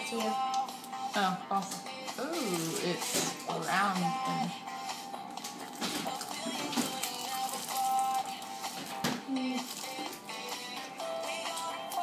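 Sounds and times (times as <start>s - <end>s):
background pop music: 0.0s - 12.0s.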